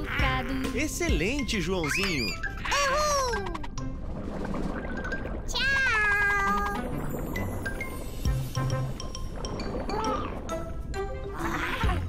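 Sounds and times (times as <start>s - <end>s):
light background music: 0.0s - 5.4s, 6.0s - 12.0s.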